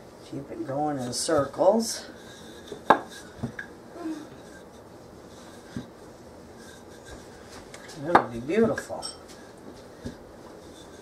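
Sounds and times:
rolling pin rubbing on dough: 0.3s - 11.0s.

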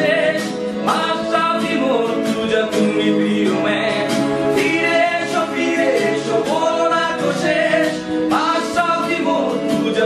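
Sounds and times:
song with singing voices: 0.0s - 10.0s.

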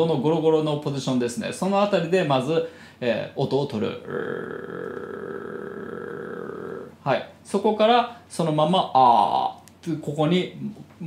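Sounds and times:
man growling in throat: 4.0s - 7.0s.

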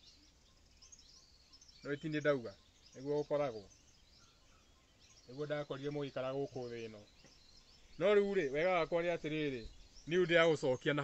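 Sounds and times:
faint outdoor background noise: 0.0s - 11.0s
man speaking: 8.0s - 11.0s.

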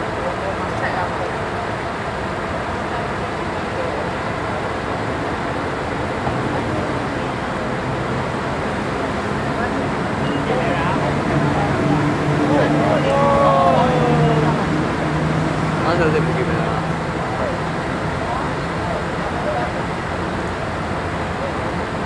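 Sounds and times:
bus diesel engines idling: 0.0s - 22.0s
faint voices: 0.0s - 22.0s.

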